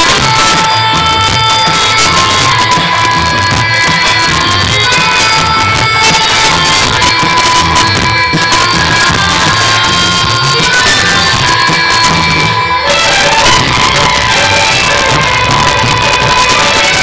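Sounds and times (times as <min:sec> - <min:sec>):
loud dance music: 0:00.0 - 0:17.0.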